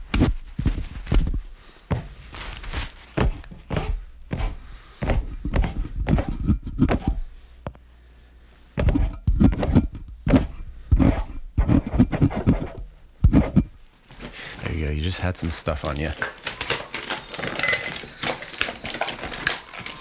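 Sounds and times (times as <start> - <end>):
hands and cloth handling microphone: 0.0 - 7.8.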